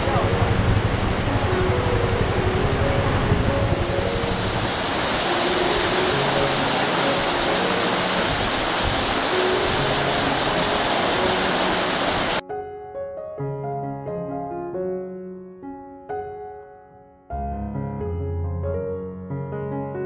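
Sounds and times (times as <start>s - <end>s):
rushing water: 0.0s - 12.4s
soft background music: 0.0s - 12.4s.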